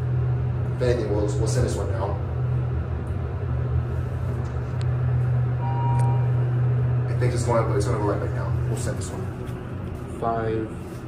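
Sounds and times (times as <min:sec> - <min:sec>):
elevator cab rumbling: 0:00.0 - 0:10.6
thin tone: 0:05.6 - 0:06.6.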